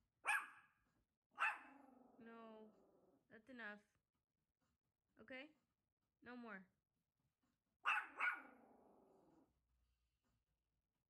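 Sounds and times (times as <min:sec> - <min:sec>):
small dog barking: 0:00.2 - 0:00.7, 0:01.4 - 0:02.0, 0:07.8 - 0:08.8.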